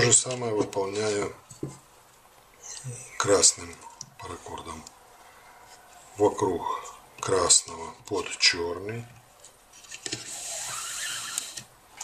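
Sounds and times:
cord rubbing hiss: 0:10.1 - 0:11.7.

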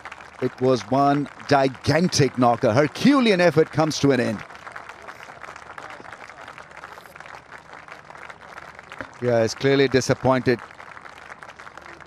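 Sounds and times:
crowd applauding: 0:00.0 - 0:12.0.

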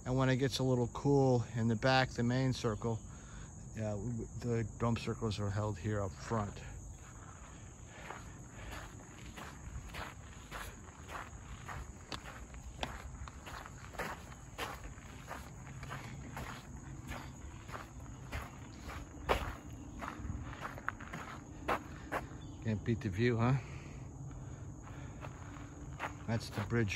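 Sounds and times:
crickets chirring: 0:00.0 - 0:26.9
footsteps crunching on gravel: 0:05.8 - 0:22.5, 0:24.8 - 0:26.9.

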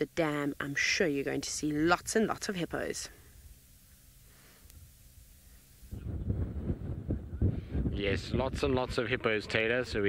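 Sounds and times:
wind buffeting microphone: 0:05.9 - 0:10.0.

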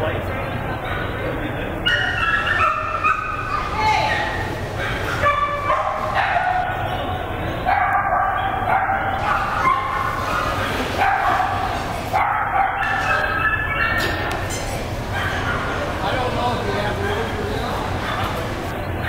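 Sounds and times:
murmur of people talking: 0:00.0 - 0:19.0
dog yipping and whining: 0:01.9 - 0:04.3, 0:12.3 - 0:14.2.

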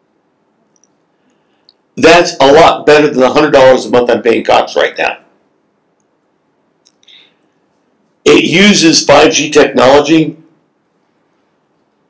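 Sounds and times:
man speaking: 0:02.0 - 0:05.3, 0:08.3 - 0:10.4.

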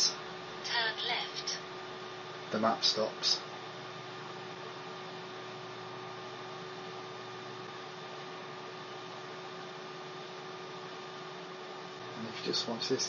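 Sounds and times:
faint electrical hum: 0:00.0 - 0:13.0.

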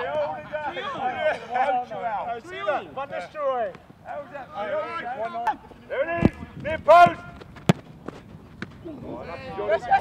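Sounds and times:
footballers shouting: 0:00.0 - 0:07.4
football being kicked: 0:07.3 - 0:08.8.

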